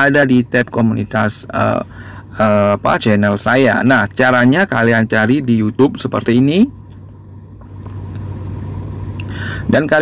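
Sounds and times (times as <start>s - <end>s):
low steady rumbling hum: 0.0s - 10.0s.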